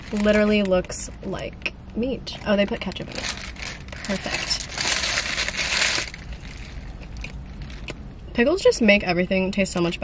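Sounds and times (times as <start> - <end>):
paper wrapper crinkling: 0.0 - 1.4, 2.5 - 8.1.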